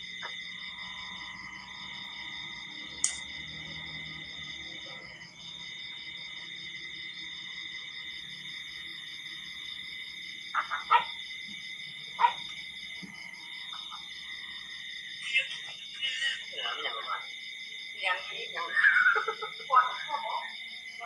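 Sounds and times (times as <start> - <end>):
insects trilling: 0.0 - 21.0
pulsing insect call: 0.0 - 21.0.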